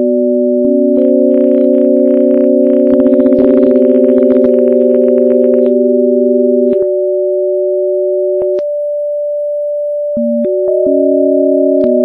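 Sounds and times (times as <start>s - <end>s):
electronic sine tones: 0.0s - 12.0s.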